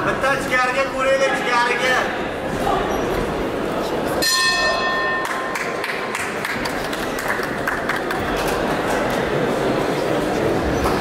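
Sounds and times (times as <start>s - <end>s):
arena crowd noise: 0.0s - 11.0s
boxing ring bell: 4.2s - 5.6s.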